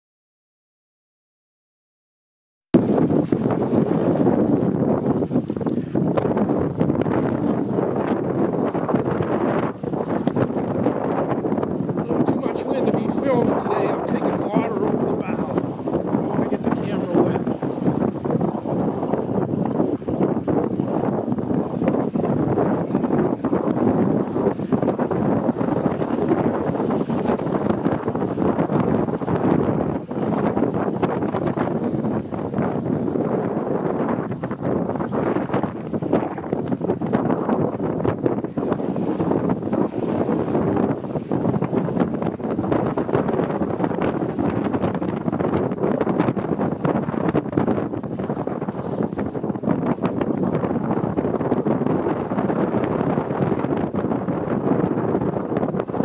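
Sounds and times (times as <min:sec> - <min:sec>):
water rushing along hulls: 0:02.8 - 0:56.0
wind buffeting microphone: 0:02.8 - 0:56.0.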